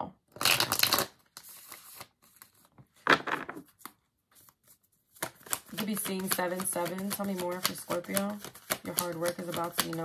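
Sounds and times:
cards being shuffled: 0:00.4 - 0:10.0
soft rustle of cards: 0:03.6 - 0:10.0.

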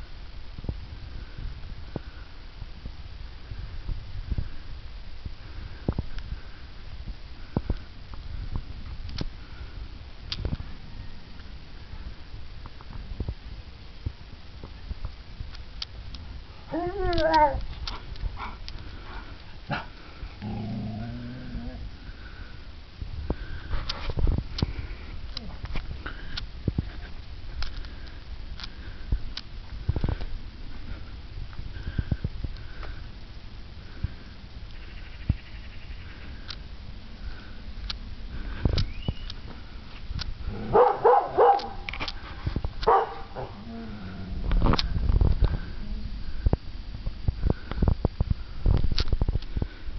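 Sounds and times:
dog growling: 0:19.7 - 0:21.9, 0:42.9 - 0:44.6
dog barking: 0:40.7 - 0:41.8, 0:42.9 - 0:43.6.

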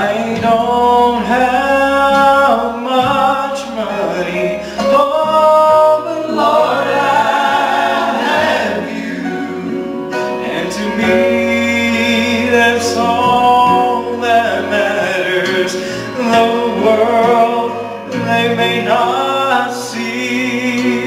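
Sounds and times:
men singing gospel in harmony: 0:00.0 - 0:21.0
musical accompaniment with bass: 0:00.0 - 0:21.0.

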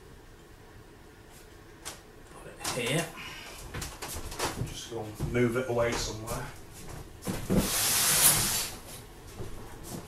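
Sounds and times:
loud hissing burst: 0:07.5 - 0:08.8.

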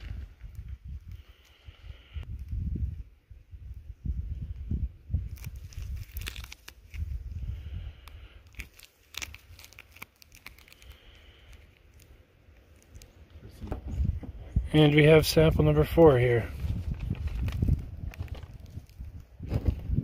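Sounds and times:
rustling of handled rocks: 0:00.0 - 0:02.5, 0:05.2 - 0:20.0
low rumbling on microphone: 0:13.3 - 0:20.0.

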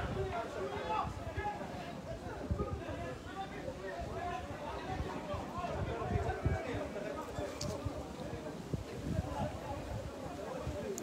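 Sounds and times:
people talking indistinctly: 0:00.0 - 0:11.0.

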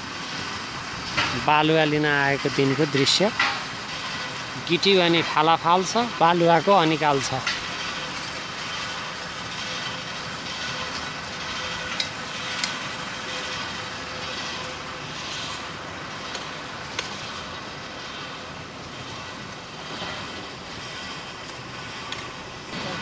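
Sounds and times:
conveyor belts carrying gravel: 0:00.0 - 0:23.0.

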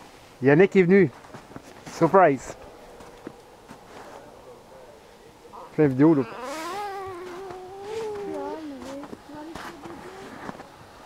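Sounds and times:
high-pitched wailing voice: 0:06.0 - 0:10.5.

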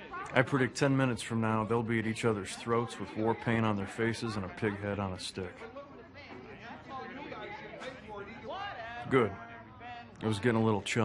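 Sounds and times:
voices talking over one another: 0:00.0 - 0:11.0.

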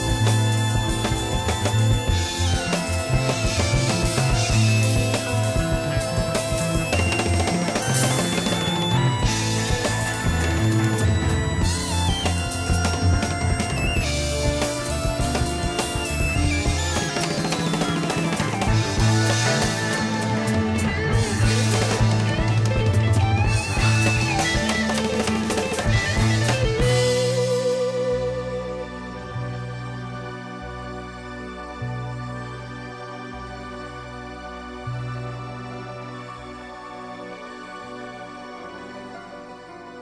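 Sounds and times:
drum kit: 0:00.0 - 0:28.8
rock band playing: 0:00.0 - 0:29.3
bass line: 0:00.0 - 0:36.2.

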